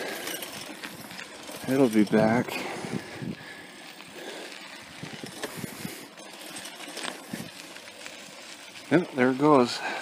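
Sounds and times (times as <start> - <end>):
bicycle knocks and rattles: 0.0 - 3.6, 4.3 - 9.5
bicycle tyres crunching on dirt: 0.0 - 10.0.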